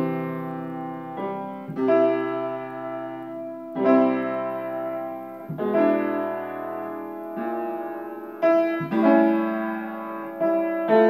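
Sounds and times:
upright piano chords: 0.0 - 11.0.

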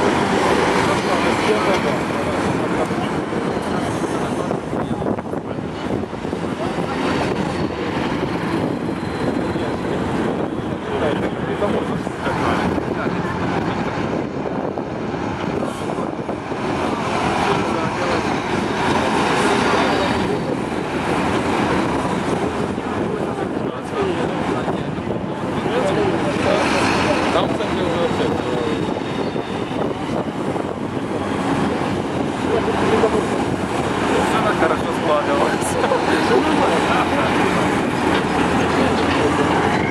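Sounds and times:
diesel truck engines running: 0.0 - 39.9
tyre and road noise: 0.0 - 39.9.

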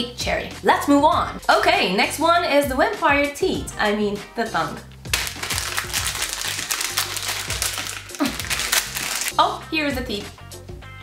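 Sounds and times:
background music: 0.0 - 11.0
plastic wrapper crinkling and tearing: 5.1 - 9.4.

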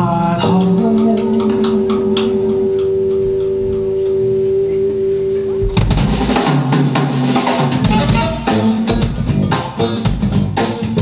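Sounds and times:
electric guitar sustained note: 0.4 - 9.5
drum kit hit: 5.6 - 11.0.

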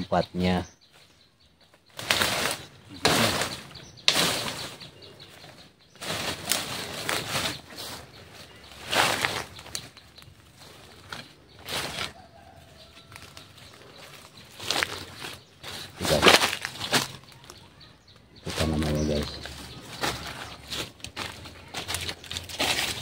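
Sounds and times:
leaves and undergrowth rustling: 0.0 - 23.0.

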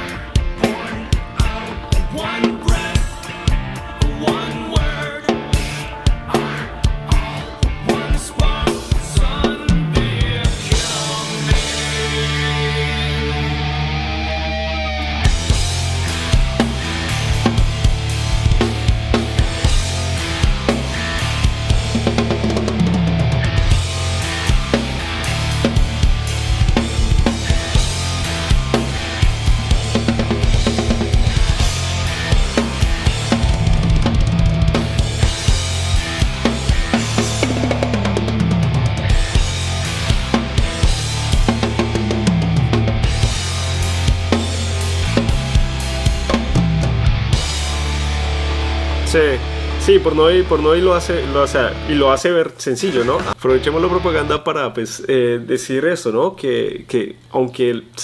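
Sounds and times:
drum kit playing: 0.0 - 52.1, 52.9 - 54.4
recorded metal song: 0.0 - 54.6.

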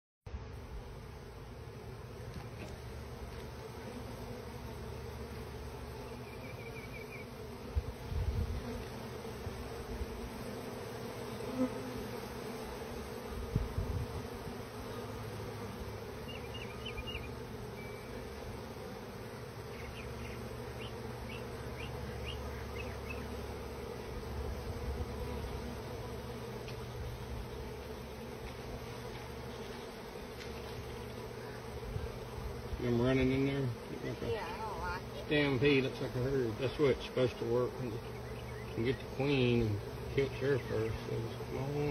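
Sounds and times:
bees buzzing: 0.3 - 41.9.

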